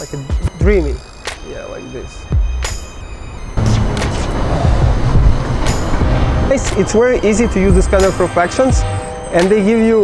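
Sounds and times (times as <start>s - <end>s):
gusty wind on microphone: 2.2s - 8.5s.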